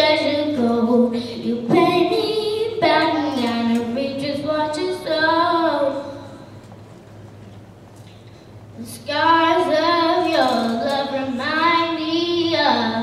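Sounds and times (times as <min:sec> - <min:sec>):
girl singing through microphone: 0:00.0 - 0:06.5, 0:08.8 - 0:13.0.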